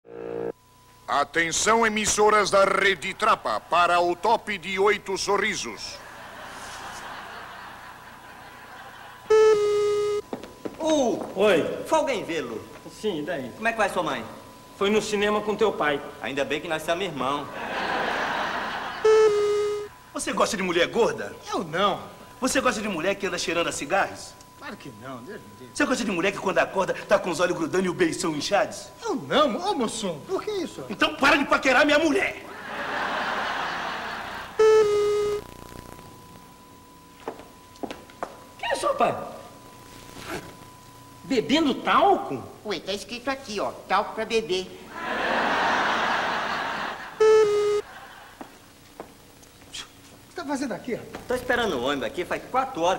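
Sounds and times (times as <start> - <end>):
faint tape hiss: 0.1 - 52.9
loud electronic beep tone: 9.3 - 10.2, 19.0 - 19.9, 34.6 - 35.4, 47.2 - 47.9.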